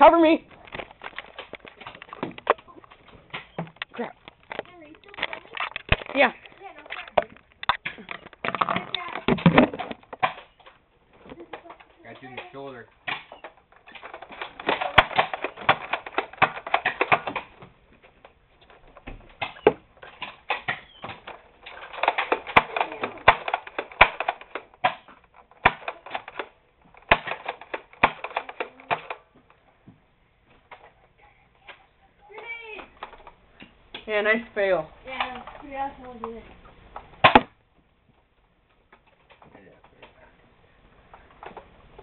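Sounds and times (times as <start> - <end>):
toy blasters clicking and clattering: 0.6 - 17.6, 18.2 - 29.3, 35.1 - 36.4.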